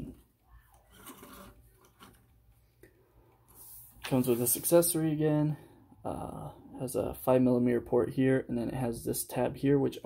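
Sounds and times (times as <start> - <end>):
plastic figure rubbing: 0.8 - 2.3.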